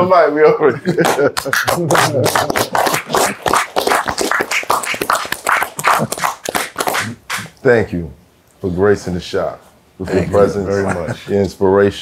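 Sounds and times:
people applauding: 1.0 - 7.5.

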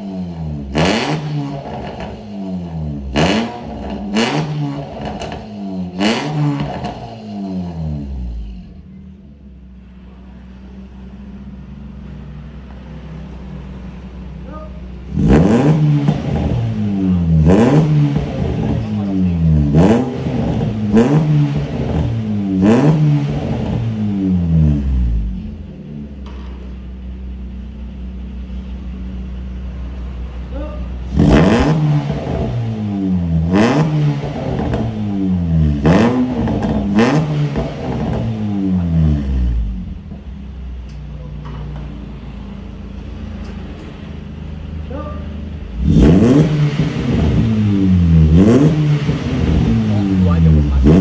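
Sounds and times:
car engine idling and revving: 0.0 - 51.0.

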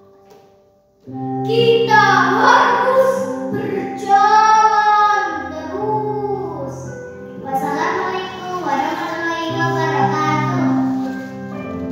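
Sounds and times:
background music sustained chords: 0.0 - 11.9
girl reciting in sing-song voice: 1.5 - 10.8.

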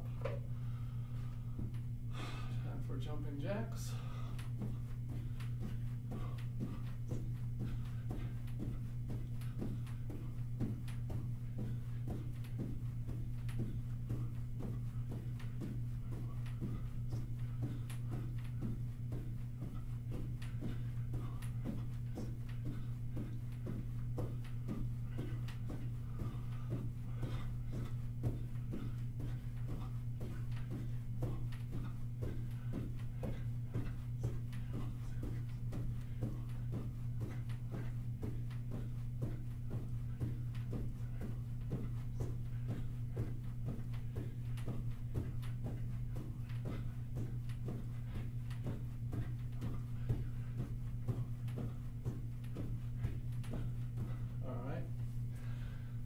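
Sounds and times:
low hum: 0.0 - 56.0
sneakers thudding on carpet: 4.4 - 55.7.

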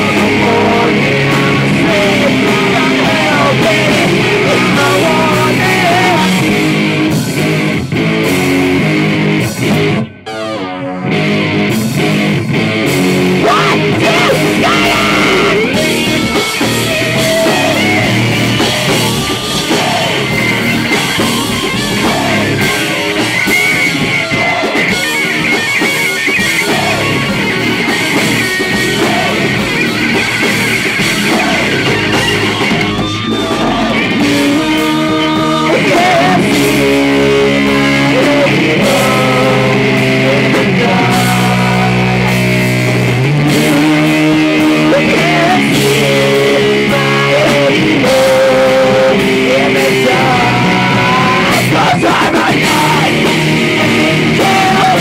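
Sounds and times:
person singing: 0.0 - 6.8, 13.4 - 23.3, 26.4 - 30.0, 31.0 - 42.6, 43.4 - 55.0
distorted electric guitar: 0.0 - 55.0
drums: 0.0 - 55.0.

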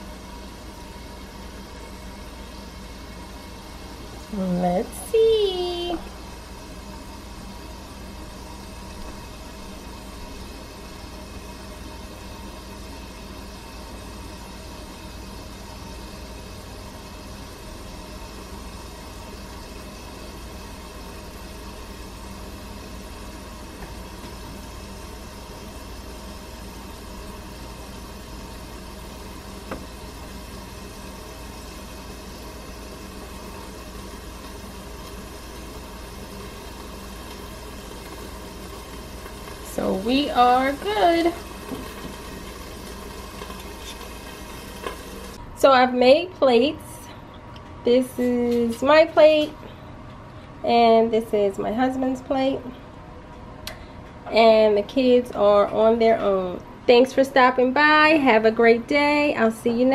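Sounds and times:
machine hum with hiss: 0.0 - 59.9.

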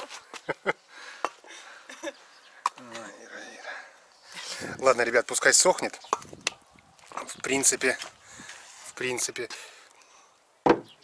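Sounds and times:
person's wordless voice: 2.8 - 6.0.

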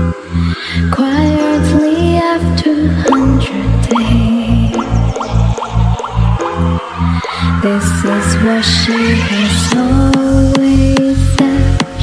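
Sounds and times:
held synth note: 0.1 - 10.4
pounding bass beat: 1.1 - 12.0
short rising synth blips: 3.1 - 10.4.

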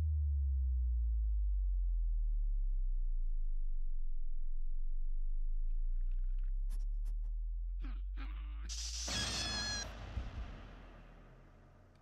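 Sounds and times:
short squeaky cries: 9.0 - 10.0.

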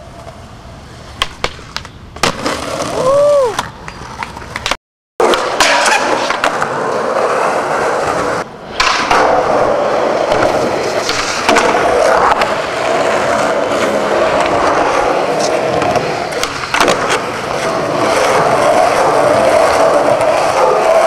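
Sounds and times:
skateboard clacking on ground: 0.0 - 21.0
skateboard wheels rolling on concrete: 0.0 - 21.0.

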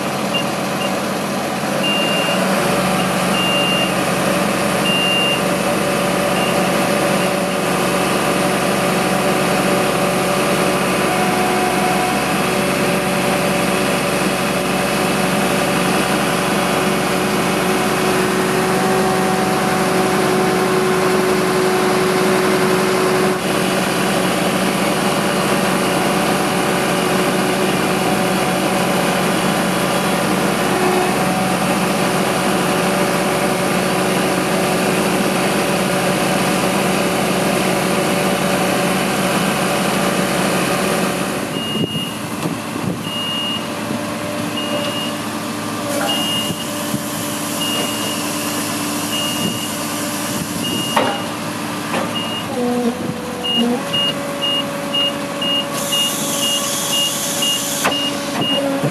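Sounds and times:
truck engine running: 0.0 - 58.9
short high warning beeps: 1.8 - 2.4, 46.1 - 46.7, 53.5 - 58.6.

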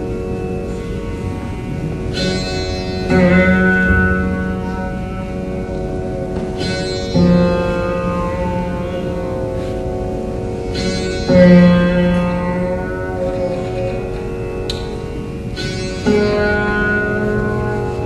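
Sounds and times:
bed of string tones: 0.0 - 18.0
plucked low veena notes: 0.0 - 18.0.

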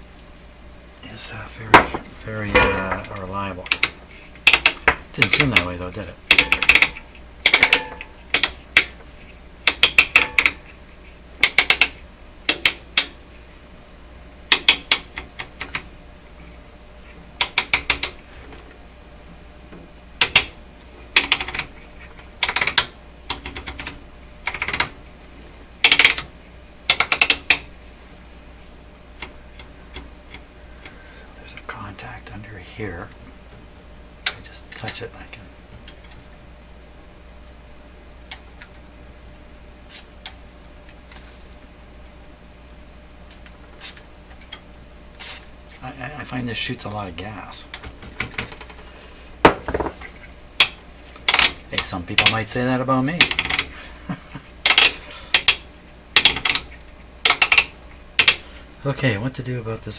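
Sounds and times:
rotary switch clicking: 6.3 - 9.0, 14.5 - 15.8, 25.8 - 26.3, 26.9 - 27.6, 56.2 - 58.4.

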